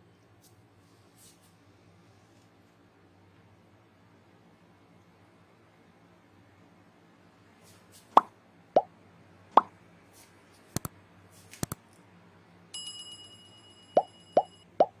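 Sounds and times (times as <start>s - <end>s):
notification bell chime: 12.8s - 14.6s.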